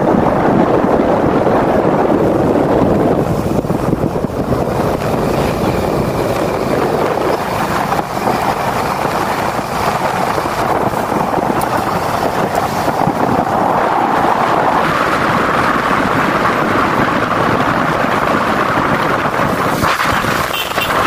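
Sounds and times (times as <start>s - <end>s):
tyre noise on dirt road: 0.0s - 21.0s
wind rush over microphone: 0.0s - 21.0s
motorcycle engine: 0.1s - 21.0s.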